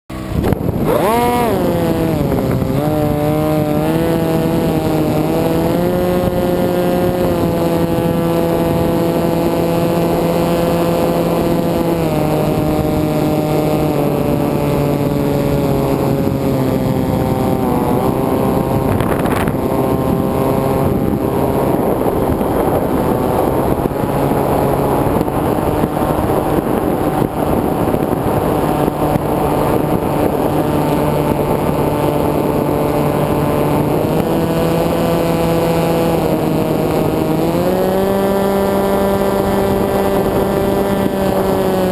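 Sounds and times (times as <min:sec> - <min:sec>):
propeller motor buzzing: 0:00.1 - 0:41.9
wind rushing: 0:00.1 - 0:41.9.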